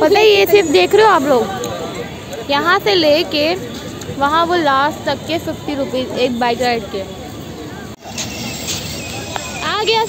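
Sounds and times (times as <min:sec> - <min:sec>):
crowd hubbub: 0:00.0 - 0:10.0.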